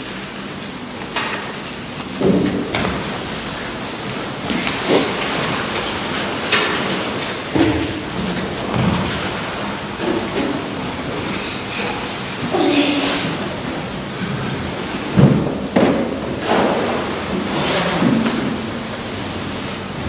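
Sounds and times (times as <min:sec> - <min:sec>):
steady hiss: 0:00.0 - 0:20.0.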